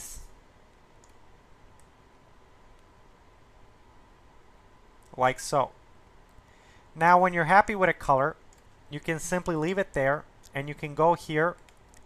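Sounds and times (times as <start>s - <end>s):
computer mouse clicks: 1.0s - 2.0s, 2.7s - 2.9s, 8.5s - 8.8s, 11.5s - 12.0s.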